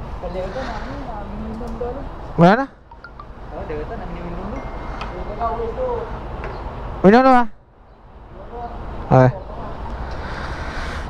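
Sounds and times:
motorcycle road noise: 0:07.7 - 0:11.0.

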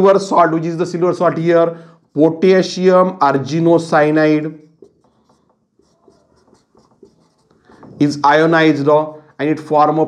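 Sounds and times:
marker scratching on whiteboard: 0:02.0 - 0:08.8
marker tapping on whiteboard: 0:04.8 - 0:08.2.

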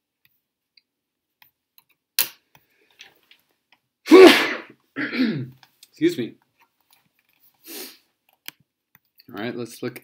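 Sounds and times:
person sneezing: 0:04.1 - 0:05.5.

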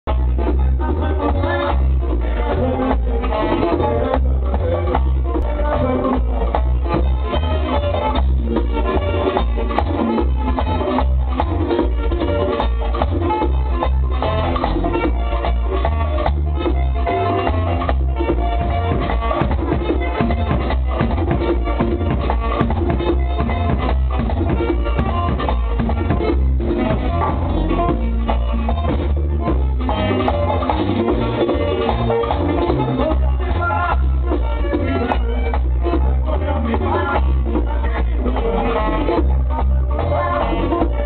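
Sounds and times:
congas: 0:00.0 - 0:41.0
button accordion: 0:00.1 - 0:41.0
saxophone: 0:00.1 - 0:41.0
tambora drum: 0:00.1 - 0:41.0.

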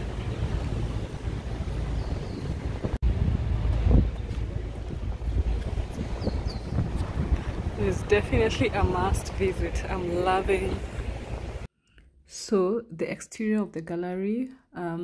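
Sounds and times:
wind buffeting microphone: 0:00.0 - 0:11.7.

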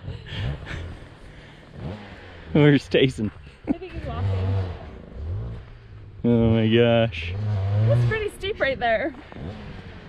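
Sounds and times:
two-stroke motorcycle engine revving: 0:00.0 - 0:10.0.

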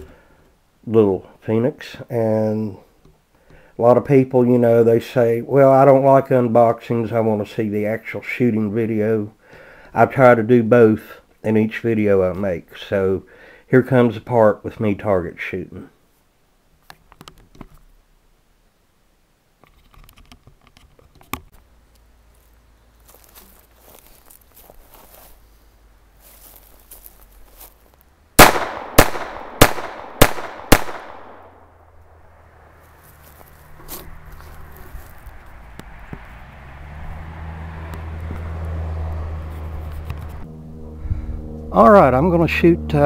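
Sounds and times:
pistol shots: 0:28.4 - 0:31.7.

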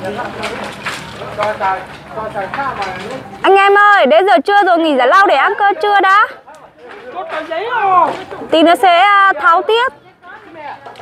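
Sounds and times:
people talking in background: 0:00.0 - 0:11.0.

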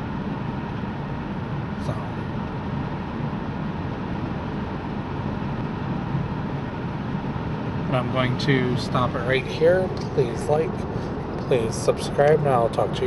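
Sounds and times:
car road noise inside cabin: 0:00.0 - 0:13.0.

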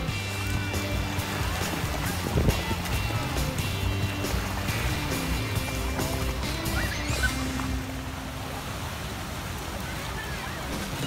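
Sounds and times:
music: 0:00.0 - 0:08.4
small waves breaking on shore: 0:00.0 - 0:11.0.

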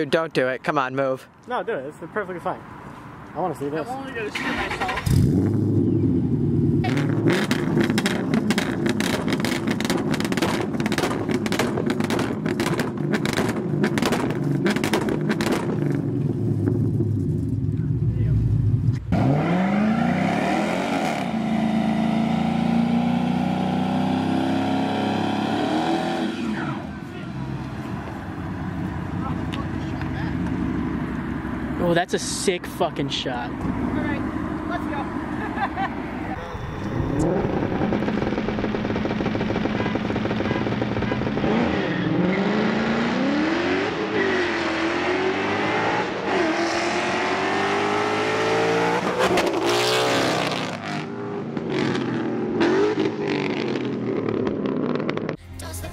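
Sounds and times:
car engine revving high: 0:04.4 - 0:16.1, 0:19.1 - 0:27.6, 0:36.3 - 0:55.4.

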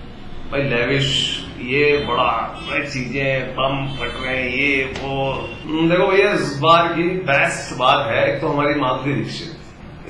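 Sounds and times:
man speaking: 0:00.5 - 0:09.7.

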